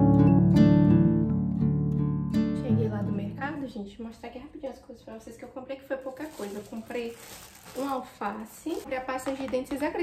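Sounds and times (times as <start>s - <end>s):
woman talking: 2.6s - 10.0s
packaging rustling: 5.9s - 9.4s.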